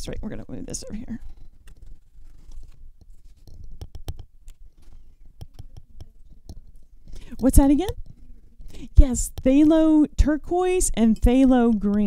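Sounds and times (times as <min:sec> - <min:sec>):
paintbrush clicking and scraping palette: 0:01.2 - 0:09.9, 0:11.0 - 0:12.0.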